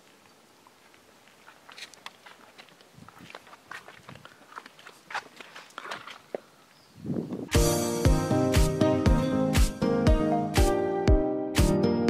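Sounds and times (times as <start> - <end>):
footsteps on stone pavement: 0.0 - 7.5.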